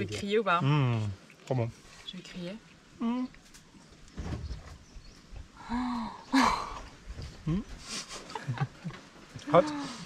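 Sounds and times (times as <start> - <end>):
person making wordless reactions: 3.0 - 3.4, 7.4 - 7.7.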